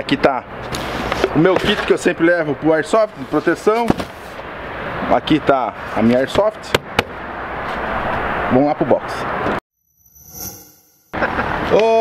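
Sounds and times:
outdoor background noise: 0:00.0 - 0:09.6, 0:11.1 - 0:12.0
edit transition sound effect: 0:10.0 - 0:11.2.

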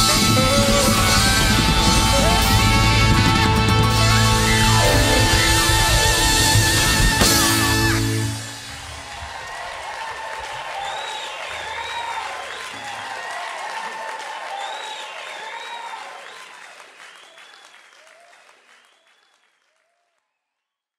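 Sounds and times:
audience applauding and cheering: 0:00.0 - 0:20.2
band low sound: 0:01.5 - 0:08.4
shouts and whistles: 0:07.3 - 0:19.4.

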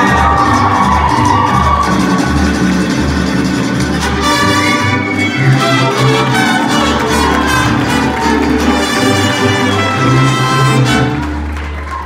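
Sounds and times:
strummed guitars: 0:00.0 - 0:11.6
mariachi ensemble playing: 0:00.0 - 0:12.0.

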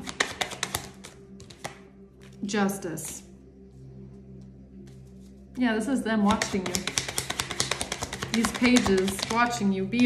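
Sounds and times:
cards being shuffled: 0:00.0 - 0:02.4, 0:06.3 - 0:09.7
soft background music: 0:00.0 - 0:10.0.

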